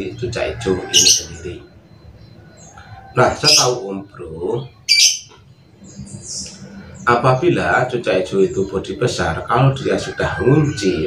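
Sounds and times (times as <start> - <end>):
songbird chirps: 0.0 - 11.0.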